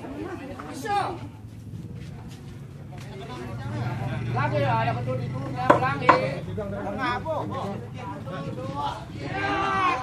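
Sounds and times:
men calling out: 3.7 - 10.0
tool striking knock: 5.6 - 6.3.

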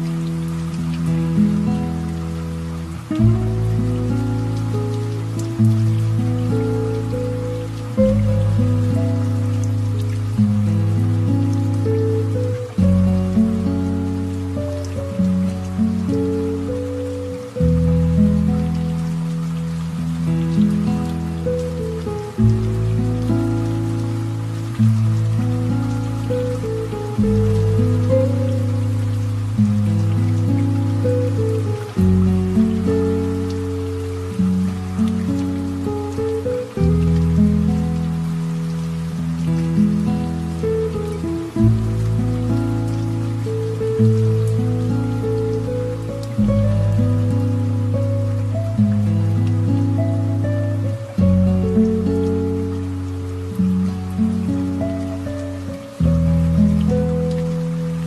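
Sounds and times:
light rain pattering: 0.0 - 58.0
slow piano chords: 0.0 - 58.0.

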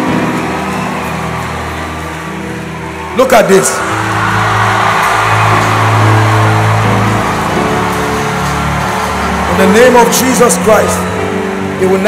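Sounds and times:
keyboard playing sustained chords: 0.0 - 12.0.

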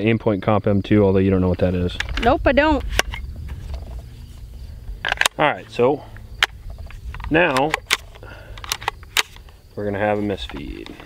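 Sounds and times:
low outdoor rumble: 0.8 - 11.0
metallic clicks of a pistol: 6.2 - 9.5.

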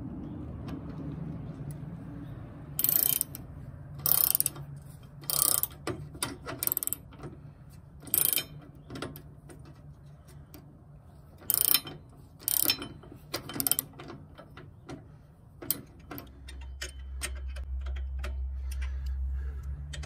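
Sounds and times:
ratchet wrench clicking: 2.8 - 7.1, 8.0 - 8.6, 11.4 - 14.5.

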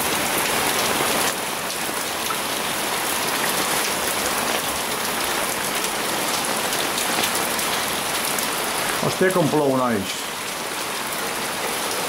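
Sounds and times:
heavy rain pouring: 0.0 - 12.0.

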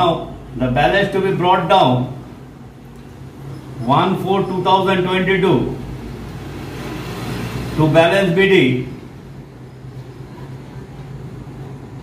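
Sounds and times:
man speaking: 0.0 - 2.2, 3.8 - 5.8, 7.8 - 9.0.

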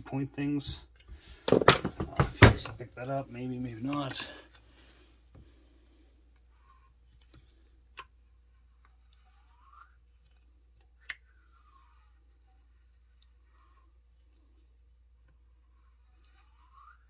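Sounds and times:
faint gliding squeaks: 15.7 - 17.0.

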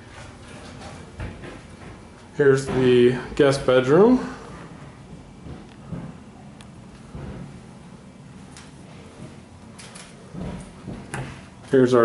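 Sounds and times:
low room background noise: 0.0 - 12.0.

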